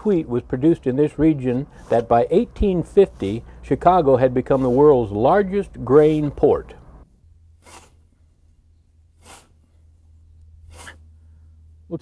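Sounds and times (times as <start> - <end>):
low steady hum: 0.0 - 12.0
scythe swishing through grass: 7.6 - 8.0.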